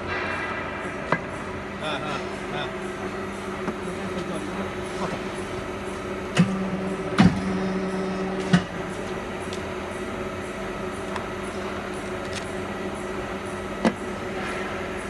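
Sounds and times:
hydraulic pump motor humming: 0.9s - 15.0s
press clunk: 6.3s - 8.8s.

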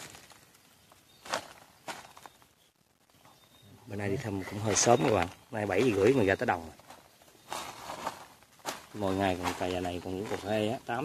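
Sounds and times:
rustling in dry leaves: 0.0s - 3.4s, 4.4s - 11.0s.

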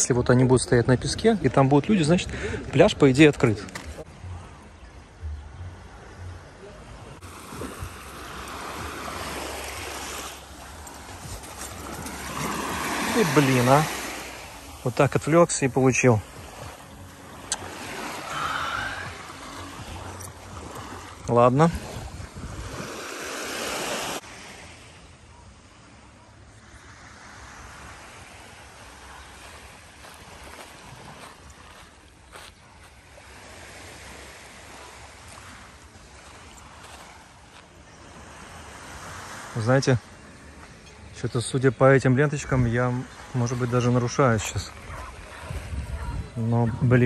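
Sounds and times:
small waves washing on sand: 6.9s - 47.0s
footsteps in wet sand: 7.2s - 24.2s, 27.6s - 40.8s
wind rumble on microphone: 21.2s - 23.0s, 44.9s - 47.0s.

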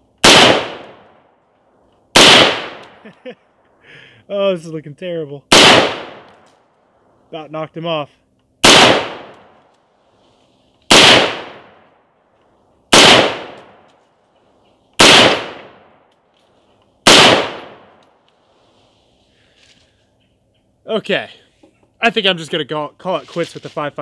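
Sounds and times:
rifle shots echoing: 0.2s - 1.3s, 2.1s - 3.0s, 5.5s - 6.5s, 8.6s - 9.7s, 10.9s - 12.0s, 12.9s - 13.9s, 15.0s - 16.1s, 17.0s - 18.0s.

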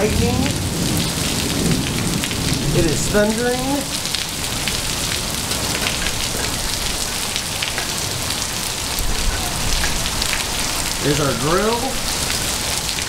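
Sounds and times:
heavy rain on gravel and pavement: 0.0s - 13.0s.

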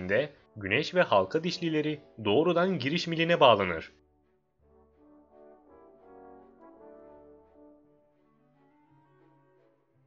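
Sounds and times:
faint slow brass-like music: 0.0s - 10.0s.

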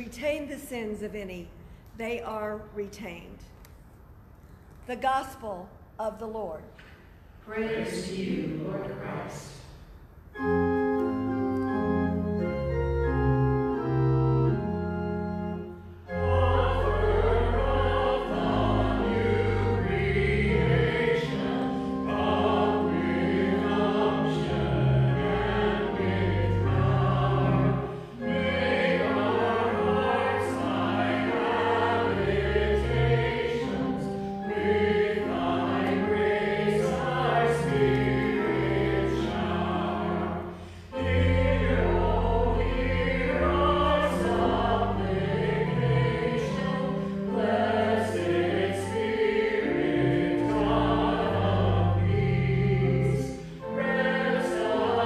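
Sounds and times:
choir singing a hymn: 7.4s - 10.8s, 11.7s - 55.0s
sustained organ chords: 10.3s - 55.0s.

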